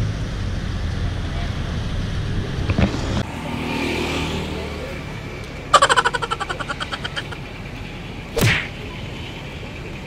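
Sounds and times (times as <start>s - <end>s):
vehicle engine passing by: 0.0s - 10.0s.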